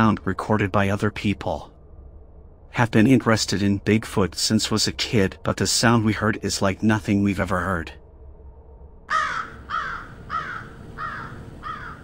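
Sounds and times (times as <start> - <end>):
bird calling: 9.1 - 12.0.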